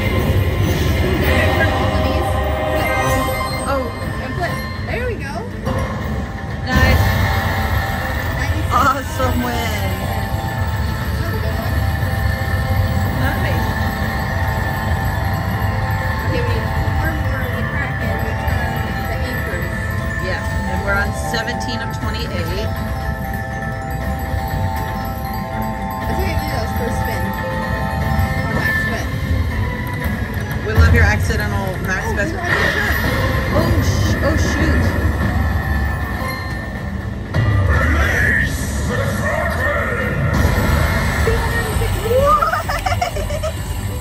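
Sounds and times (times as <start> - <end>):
slot machine win music: 0.0 - 38.3, 39.9 - 44.0
casino background noise: 0.0 - 44.0
low rumble: 26.0 - 44.0.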